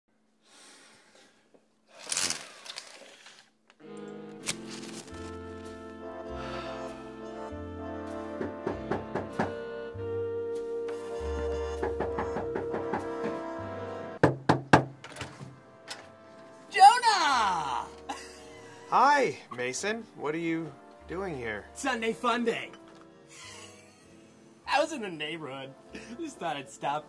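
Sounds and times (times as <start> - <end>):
music: 3.8 - 27.0
knocking on a door: 8.3 - 9.6, 11.4 - 13.4, 14.2 - 15.0.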